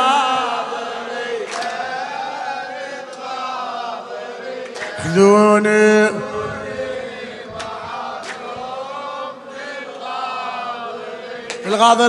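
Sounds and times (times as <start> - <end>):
men chanting: 0.0 - 12.0.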